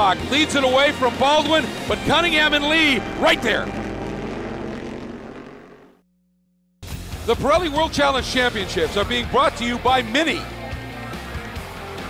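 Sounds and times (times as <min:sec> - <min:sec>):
race car engine: 0:00.0 - 0:06.0.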